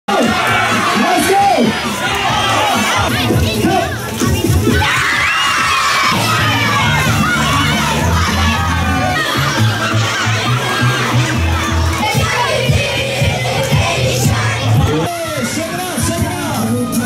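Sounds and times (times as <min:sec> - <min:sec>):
crowd cheering and shouting: 0:00.1 - 0:17.0.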